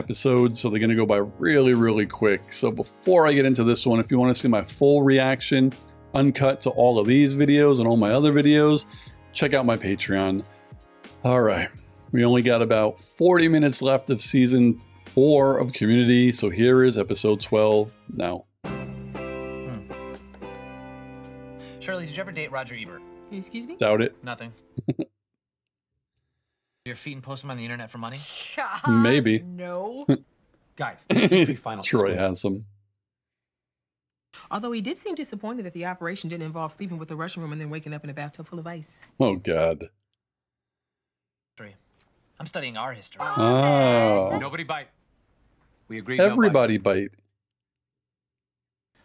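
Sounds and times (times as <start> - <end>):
person speaking: 0.0 - 10.4, 11.3 - 18.4, 19.7 - 19.9, 23.7 - 24.2, 24.8 - 25.0, 28.7 - 30.2, 31.0 - 32.6, 39.2 - 39.9, 43.2 - 44.7, 45.9 - 47.1
short laugh: 24.8 - 25.0, 31.1 - 31.6.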